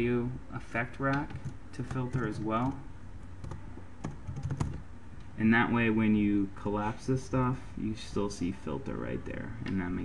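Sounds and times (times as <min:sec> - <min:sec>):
computer keyboard keystrokes: 0:01.1 - 0:02.8, 0:03.4 - 0:04.8.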